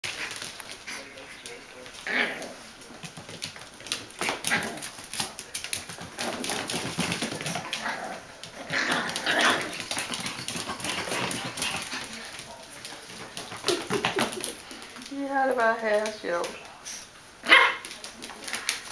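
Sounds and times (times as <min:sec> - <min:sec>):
puppies barking: 0:17.4 - 0:17.9.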